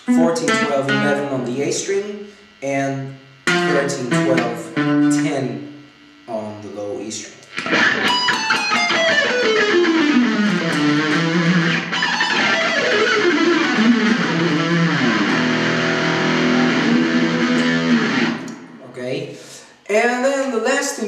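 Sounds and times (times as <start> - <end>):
electric guitar fast runs: 7.6 - 18.5.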